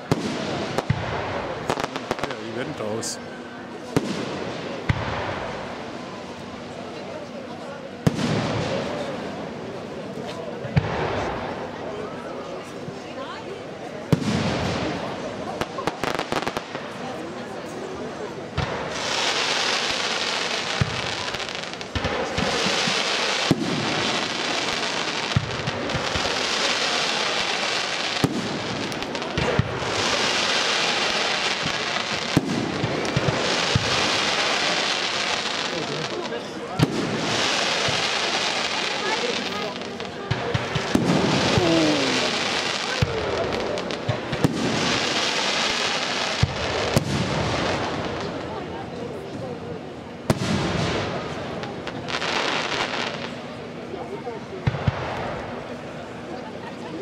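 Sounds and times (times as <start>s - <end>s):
fireworks hissing rush: 0.0s - 7.3s, 14.0s - 55.9s
fireworks bursting with bangs: 0.0s - 12.0s, 14.0s - 56.0s.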